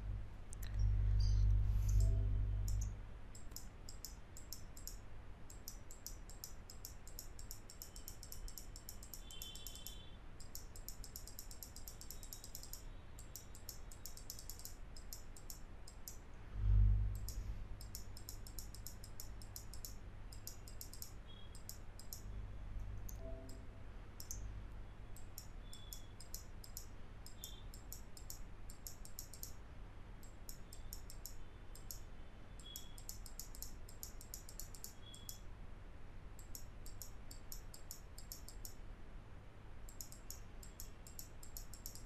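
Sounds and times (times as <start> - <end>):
faint low hum: 0.0 - 42.0
computer mouse clicking: 0.5 - 16.3, 17.1 - 23.6, 24.2 - 24.4, 25.1 - 29.6, 30.2 - 35.4, 36.4 - 38.8, 39.9 - 42.0.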